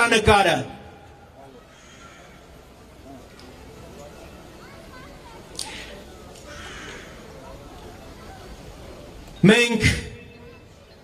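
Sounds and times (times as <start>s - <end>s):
distant crowd murmur: 0.0s - 11.0s.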